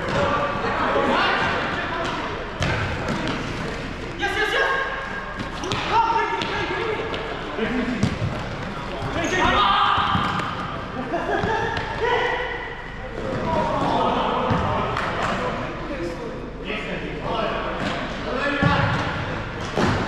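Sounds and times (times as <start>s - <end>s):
players shouting: 9.1s - 10.8s.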